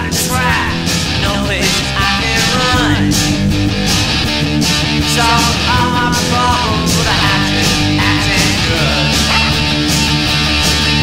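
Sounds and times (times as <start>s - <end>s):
bass guitar: 0.0s - 11.0s
electric guitars: 0.0s - 11.0s
steady drum beat: 0.0s - 11.0s.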